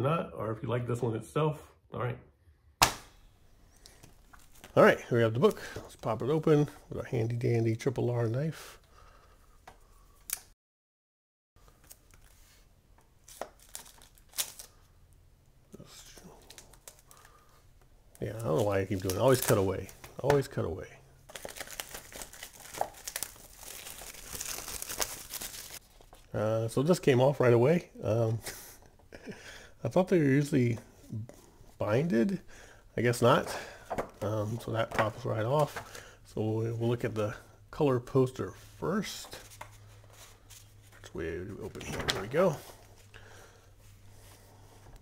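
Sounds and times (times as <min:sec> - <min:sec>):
plastic wrap crinkling and tearing: 0:04.2 - 0:04.8, 0:13.2 - 0:14.9, 0:15.9 - 0:17.4, 0:18.1 - 0:20.5, 0:21.2 - 0:26.3
paper poster rustling: 0:18.2 - 0:20.6, 0:21.3 - 0:27.5, 0:33.0 - 0:36.0, 0:38.4 - 0:43.1.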